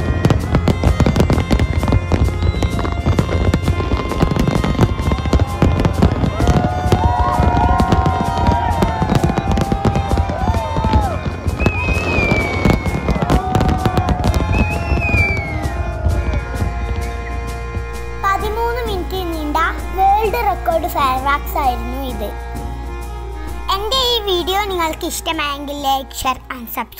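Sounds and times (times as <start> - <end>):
fireworks crackling and popping: 0.0 - 18.3
music playing: 0.0 - 26.9
high gliding whistles: 1.0 - 18.2.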